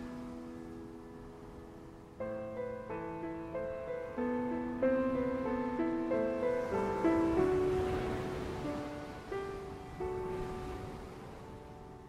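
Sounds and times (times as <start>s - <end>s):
soft piano chord: 0.0s - 12.0s.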